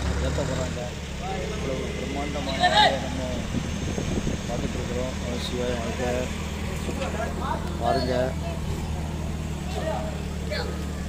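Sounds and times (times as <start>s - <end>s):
low engine hum: 0.0s - 11.0s
people talking: 0.0s - 11.0s.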